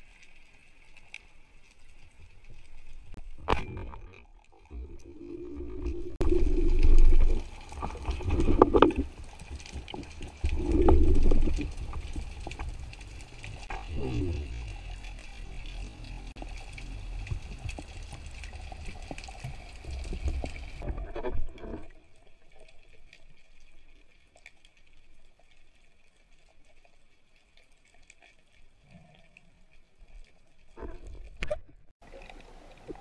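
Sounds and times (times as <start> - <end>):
underwater water rush: 0.0 - 23.9.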